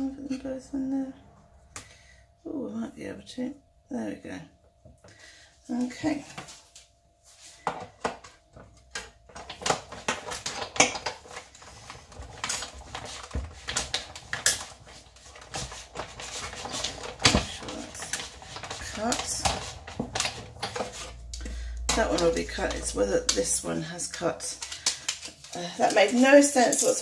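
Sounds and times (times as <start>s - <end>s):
plastic clatter: 8.9s - 23.6s.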